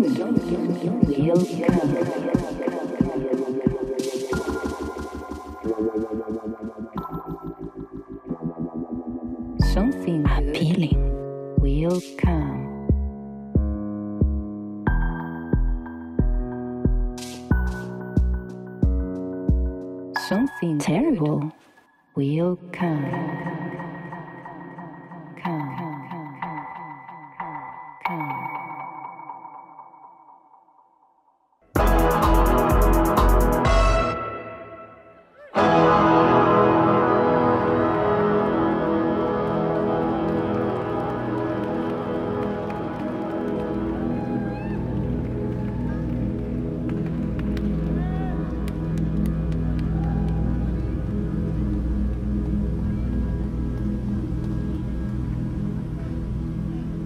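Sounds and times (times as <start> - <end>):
sustained low synth notes: 0.0 - 14.5, 35.6 - 57.0
deep bass drone: 0.0 - 17.2, 36.1 - 57.0.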